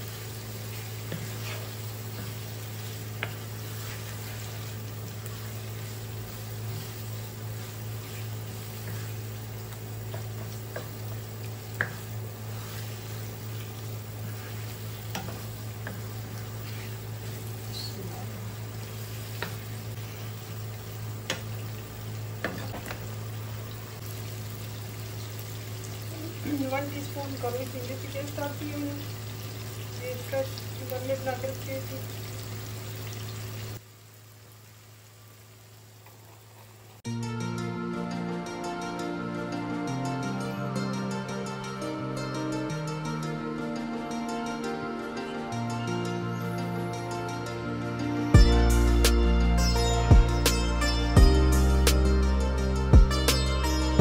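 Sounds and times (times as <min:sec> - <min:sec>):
wooden spatula stirring and scraping: 0:00.0 - 0:11.0, 0:11.8 - 0:20.3
vegetables sizzling in a frying pan: 0:00.0 - 0:37.1.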